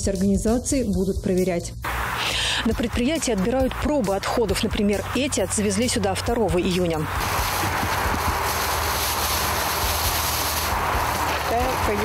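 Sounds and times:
heavy machinery rumbling: 1.9 - 12.0.

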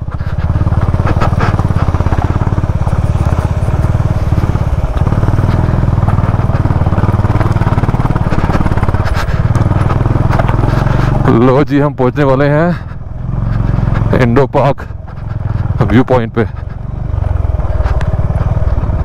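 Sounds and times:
motorcycle engine running: 0.0 - 19.0.

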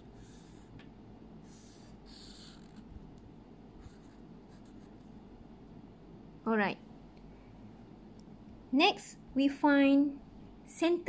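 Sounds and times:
marker pen writing on paper: 0.0 - 0.7, 1.5 - 2.9, 3.8 - 5.1
low steady hum: 0.0 - 11.0.

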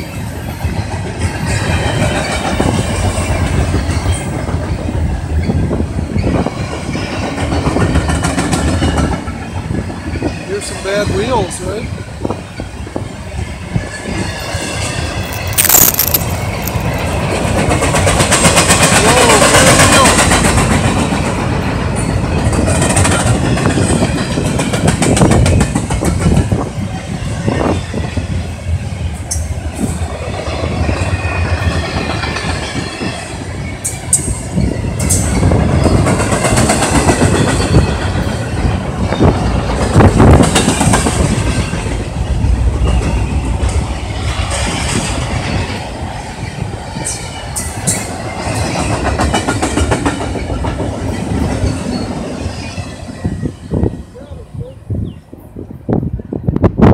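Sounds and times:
train wheels clacking over rail joints: 0.5 - 11.4, 15.2 - 26.7, 29.3 - 42.1, 47.0 - 52.5.

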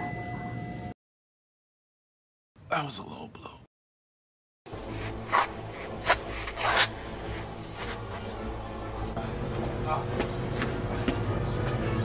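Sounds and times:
sneakers scuffing on concrete: 9.6 - 12.0.

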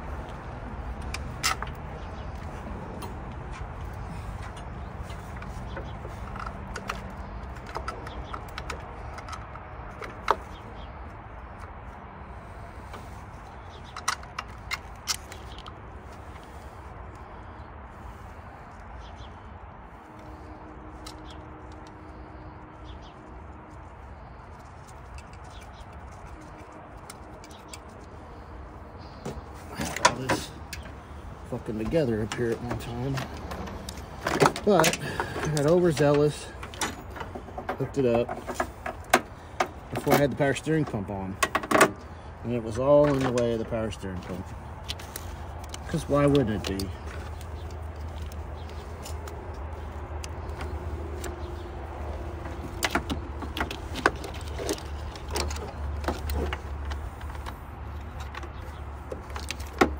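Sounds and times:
low outdoor rumble: 0.0 - 59.9
clicks of metal parts handled: 13.8 - 15.8.

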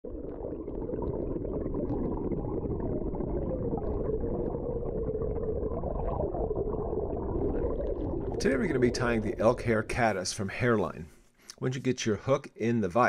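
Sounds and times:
muffled underwater rumble: 0.1 - 9.6.

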